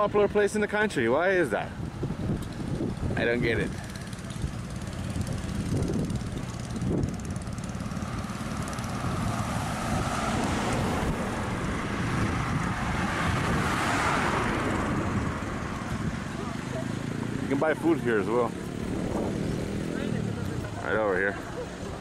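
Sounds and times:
cars passing close by: 0.0s - 22.0s.

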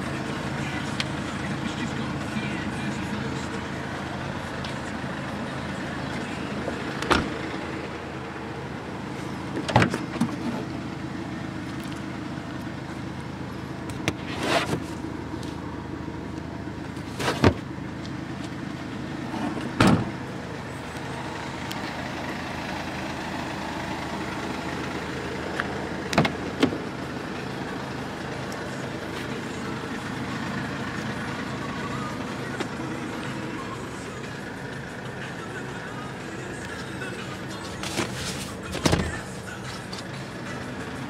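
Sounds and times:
diesel engine idling: 0.0s - 41.0s
car doors and boot thumping: 7.0s - 7.3s, 9.5s - 10.4s, 17.2s - 17.7s, 19.5s - 20.2s, 26.1s - 26.8s, 37.8s - 39.3s.

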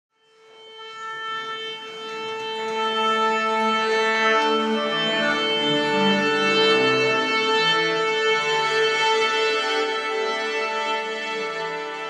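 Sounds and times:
orchestra tuning up: 0.6s - 12.0s.

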